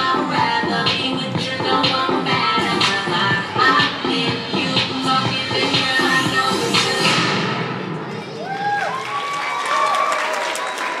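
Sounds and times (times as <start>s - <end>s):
dance music: 0.0s - 8.4s
audience clapping: 8.4s - 11.0s.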